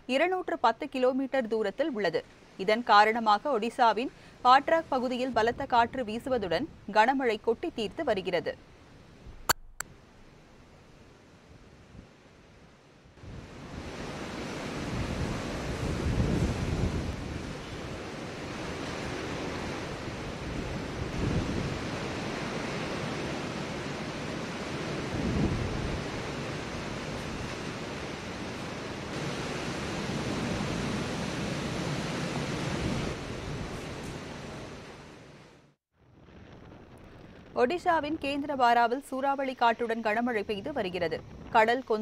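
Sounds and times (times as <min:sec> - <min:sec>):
gale wind gusting: 0:01.5 - 0:10.2, 0:13.2 - 0:35.4, 0:36.0 - 0:42.0
wind buffeting microphone: 0:13.2 - 0:34.2.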